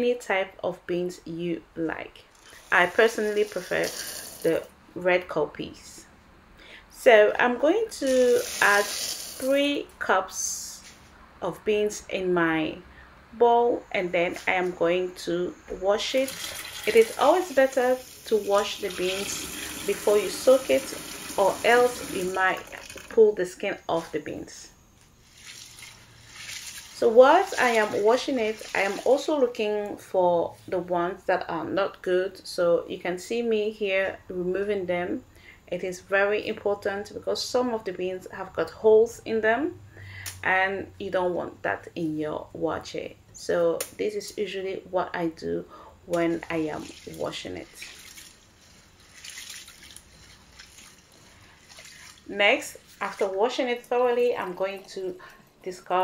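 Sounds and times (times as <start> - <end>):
water sloshing and trickling: 16.2 - 23.2, 25.2 - 29.5, 46.2 - 53.9.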